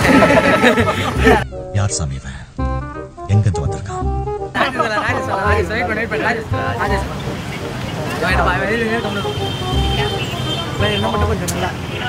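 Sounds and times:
background traffic noise: 0:00.0 - 0:01.4, 0:04.5 - 0:12.0
men talking: 0:00.0 - 0:12.0.

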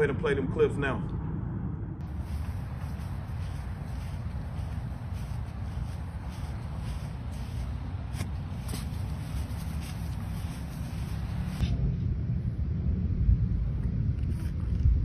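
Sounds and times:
low rumble and hiss: 0:00.0 - 0:15.0.

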